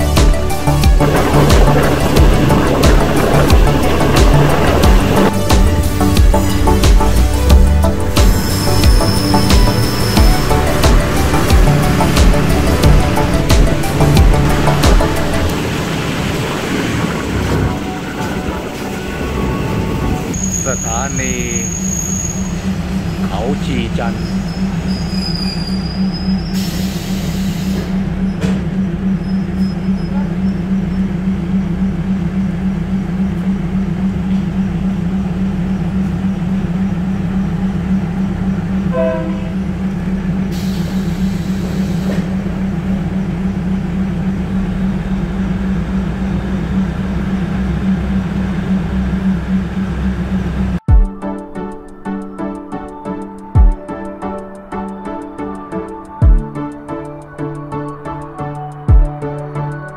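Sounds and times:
diesel train engine drone: 0:00.0 - 0:59.9
train brakes squealing: 0:08.3 - 0:10.8, 0:17.9 - 0:28.4, 0:29.2 - 0:31.2, 0:40.5 - 0:42.4.

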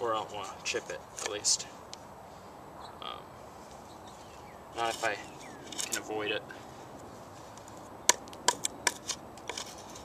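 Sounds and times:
knife cutting into wood: 0:08.1 - 0:10.0.

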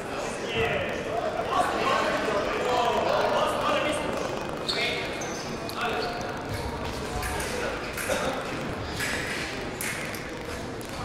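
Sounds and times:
indistinct voices in echoing hall: 0:00.0 - 0:11.0
shoe squeaks: 0:04.6 - 0:06.4.

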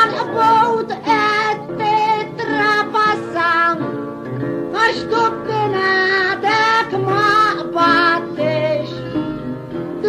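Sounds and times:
acoustic guitar: 0:00.0 - 0:10.0
high voice singing folk song: 0:00.0 - 0:10.0.

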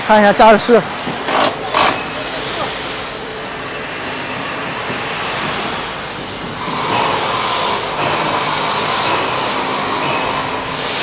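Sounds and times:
busy factory hall noise: 0:00.0 - 0:11.0.

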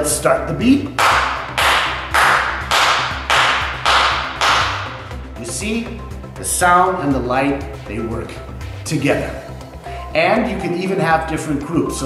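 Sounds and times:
man clapping hands: 0:00.9 - 0:05.1.

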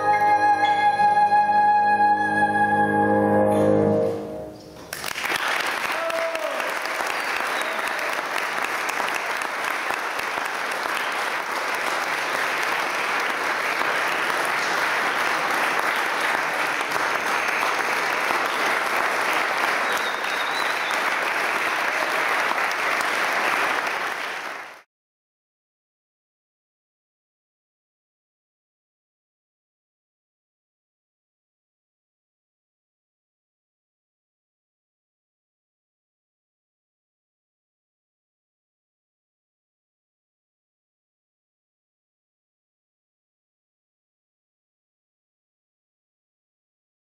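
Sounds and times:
audience applauding: 0:04.8 - 0:24.9.

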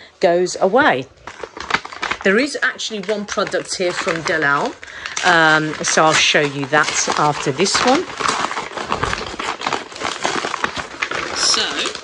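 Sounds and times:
paper bag crinkling and tearing: 0:01.2 - 0:12.0.

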